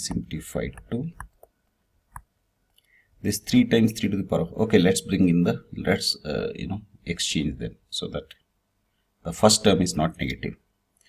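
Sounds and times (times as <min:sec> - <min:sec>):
person speaking: 0:00.0 - 0:01.4, 0:03.2 - 0:08.4, 0:09.2 - 0:10.6
stylus tapping tablet screen: 0:00.0 - 0:02.3.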